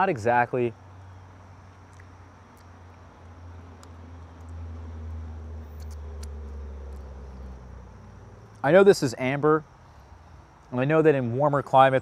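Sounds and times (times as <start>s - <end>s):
faint clicks: 3.8s - 4.6s.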